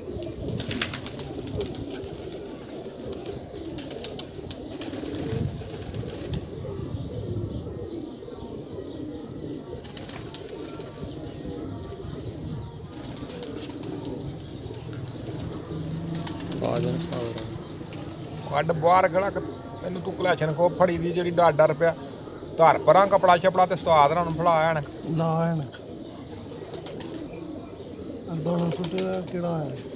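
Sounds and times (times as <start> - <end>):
pigeons cooing: 0.0 - 29.9.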